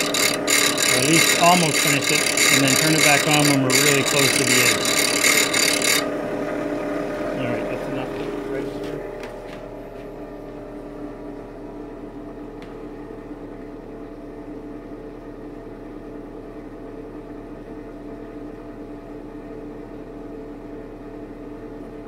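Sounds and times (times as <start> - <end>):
steady tones: 0.0 - 6.1
electric motor humming: 0.0 - 11.5.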